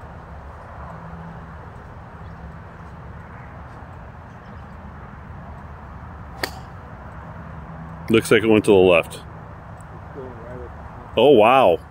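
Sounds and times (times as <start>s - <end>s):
golf club striking ball: 6.4s - 6.9s.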